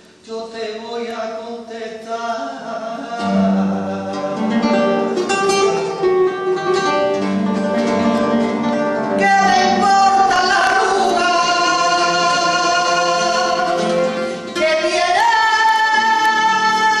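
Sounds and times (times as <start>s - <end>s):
flamenco guitar strumming: 0.0s - 17.0s
woman singing flamenco: 0.2s - 17.0s.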